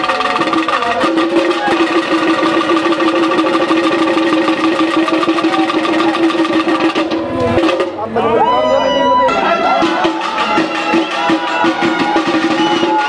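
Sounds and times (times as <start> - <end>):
fast even drumming: 0.0 - 8.5, 9.3 - 13.0.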